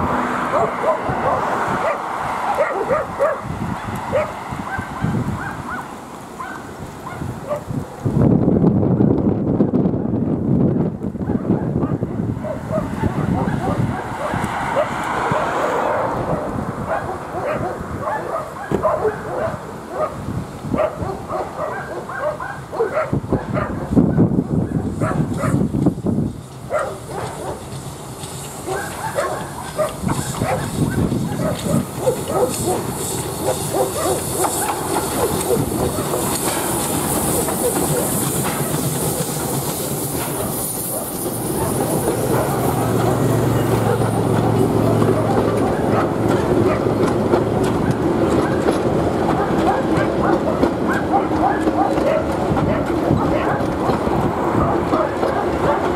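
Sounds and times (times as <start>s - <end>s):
carriages rumbling and wheel clatter: 0.0s - 55.9s
steam locomotive exhaust chuffs: 0.0s - 55.9s
steam hissing: 24.5s - 55.9s.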